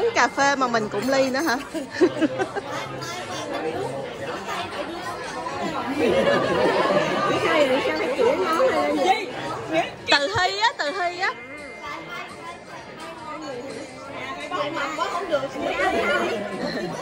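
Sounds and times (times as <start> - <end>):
women talking and laughing: 0.0 - 17.0.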